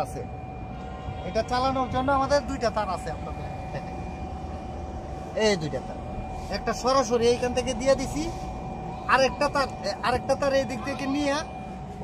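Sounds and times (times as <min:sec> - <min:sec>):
faint high whine: 0:00.0 - 0:12.0
power inverter humming: 0:00.0 - 0:12.0.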